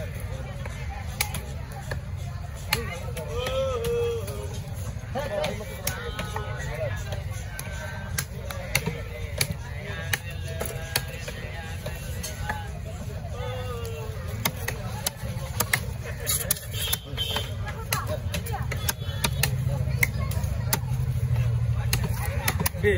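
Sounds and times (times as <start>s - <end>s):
knife chopping on wooden block: 21.8s - 22.8s.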